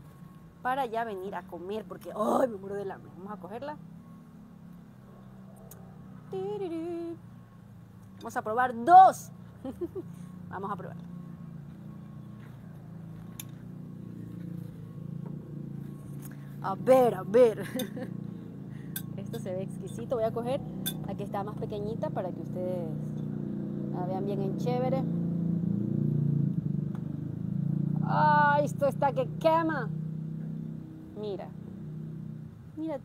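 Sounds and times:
low engine rumble: 9.3 - 33.0.

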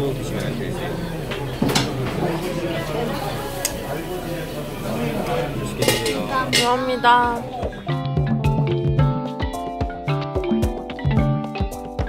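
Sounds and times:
indistinct chatter of voices: 0.0 - 8.0
tableware clinking: 5.8 - 7.0.

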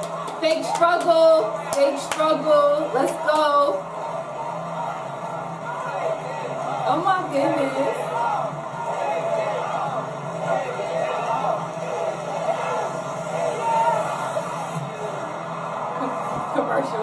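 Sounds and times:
game show background music: 0.0 - 17.0.

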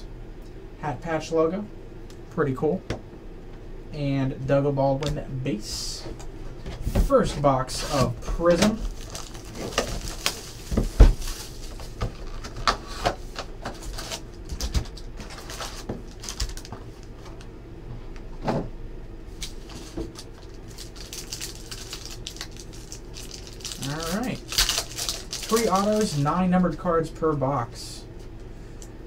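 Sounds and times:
plastic shrink-wrap tearing: 7.9 - 12.9, 13.8 - 17.1, 19.4 - 26.2
card packs tapping and clicking: 19.8 - 26.2.

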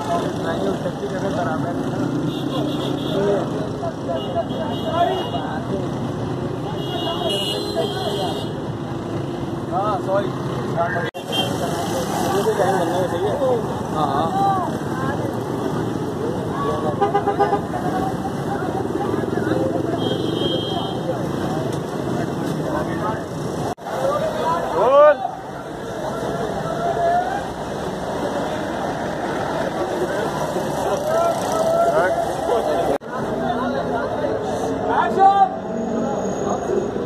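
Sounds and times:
crowd chattering: 0.0 - 37.0
passing traffic: 0.0 - 37.0.

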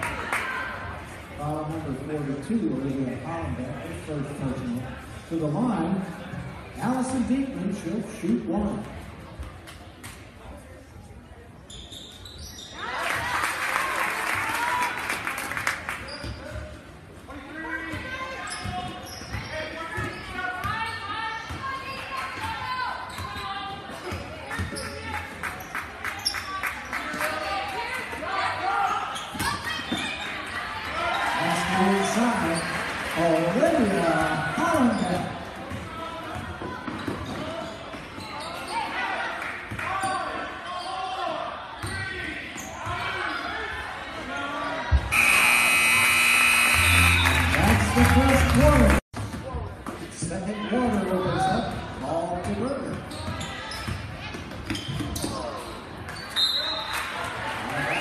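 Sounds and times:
spectators talking and calling out: 43.1 - 49.0
scoreboard horn: 45.1 - 49.0.

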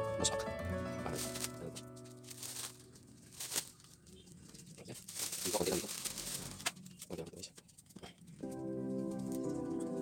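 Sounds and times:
plastic bag rustling: 1.0 - 9.8.

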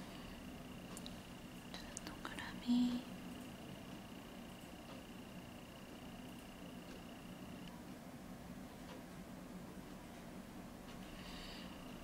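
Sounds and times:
faint high-pitched whine: 0.0 - 12.0
soft whispered vocal sound: 1.7 - 3.1.

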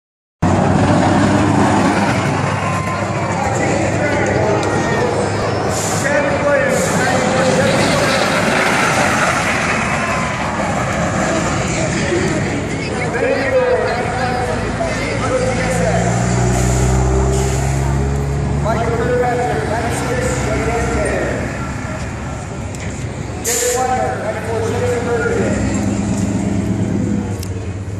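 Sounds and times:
people talking: 2.8 - 8.5, 11.2 - 16.2, 18.6 - 22.6, 23.4 - 25.9.

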